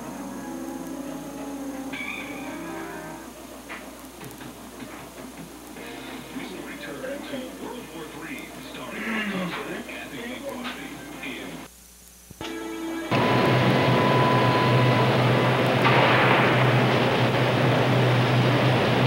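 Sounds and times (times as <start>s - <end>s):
held musical tones: 0.0s - 4.2s
muffled indistinct voices: 5.8s - 11.7s.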